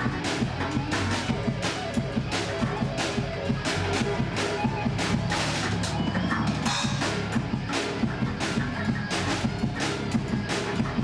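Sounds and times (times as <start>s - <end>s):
bass guitar: 0.0s - 11.0s
distorted electric guitars: 0.0s - 11.0s
drum kit hits: 0.0s - 11.0s.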